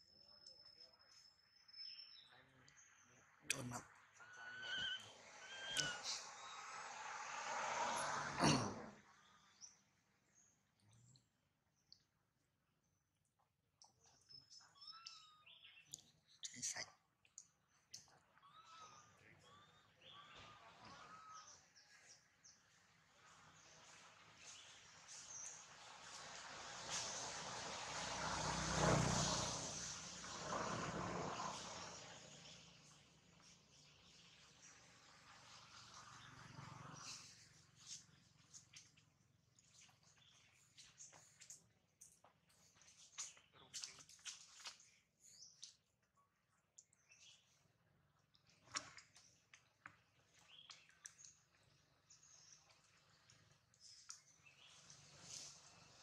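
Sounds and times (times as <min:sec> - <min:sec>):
infant monkey screaming: 0:04.2 - 0:06.2
vehicle engine droning by: 0:04.2 - 0:09.8, 0:22.8 - 0:39.0, 0:54.5 - 0:56.0.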